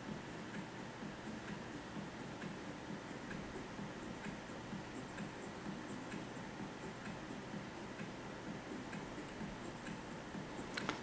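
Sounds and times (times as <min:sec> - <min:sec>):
faint regular ticking: 0:00.0 - 0:11.0
low room hiss: 0:00.0 - 0:11.0.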